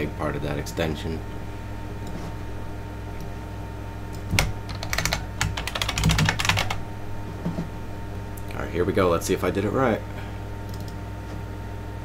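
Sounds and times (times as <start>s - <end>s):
steady low hum: 0.0s - 12.0s
typing on computer keyboard: 4.4s - 6.8s.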